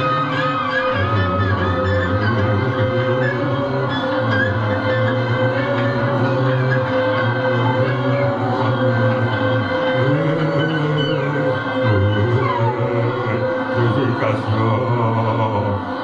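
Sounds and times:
experimental guitar and keyboard drone: 0.0 - 16.0.

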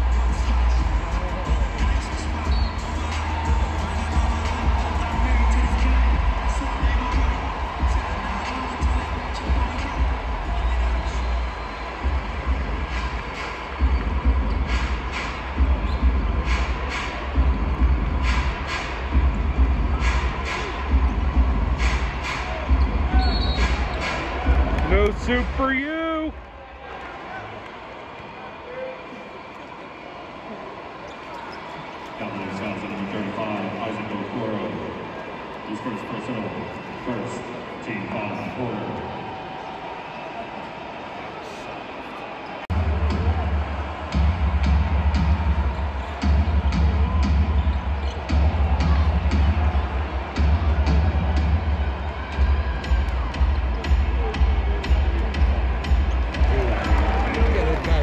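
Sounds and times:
arena music with heavy bass: 0.0 - 26.3, 42.7 - 58.0
shoe squeaks: 2.4 - 2.9, 23.2 - 23.7.

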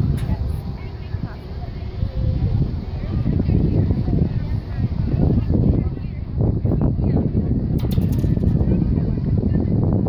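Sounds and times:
spectators chattering: 0.0 - 10.0.

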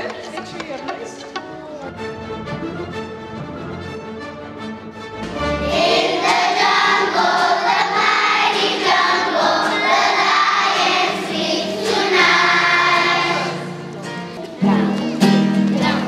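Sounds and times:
young children singing: 5.4 - 16.0.

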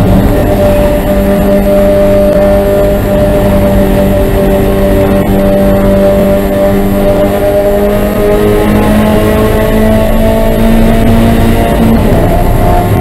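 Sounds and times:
race car engine at high revs: 0.0 - 13.0
wind and road rush: 0.0 - 13.0.

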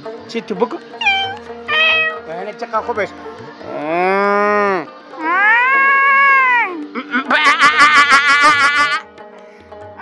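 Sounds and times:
meow-like call: 1.0 - 2.2, 5.2 - 9.0.

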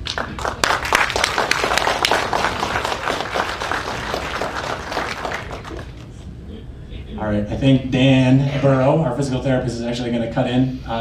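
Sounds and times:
audience applauding: 0.0 - 6.2.

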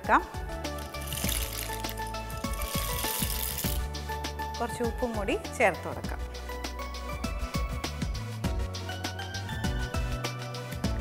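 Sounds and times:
background music with bass line: 0.0 - 11.0
water hissing in a pan: 1.0 - 3.8.

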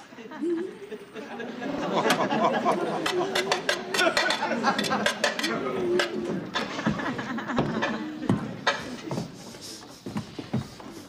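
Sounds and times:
metal utensil clinking in frying pan: 3.0 - 5.6.

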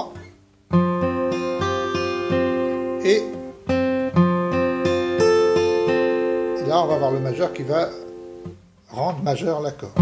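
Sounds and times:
acoustic guitar fingerpicking arpeggio: 0.0 - 10.0.

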